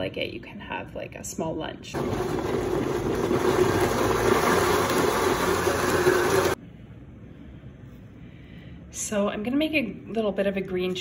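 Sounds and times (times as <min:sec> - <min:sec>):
blender running: 0:02.0 - 0:06.6.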